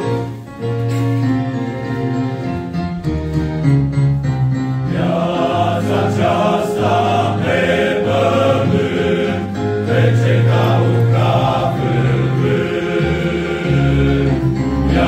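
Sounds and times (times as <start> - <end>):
male choir singing: 4.8 - 15.0.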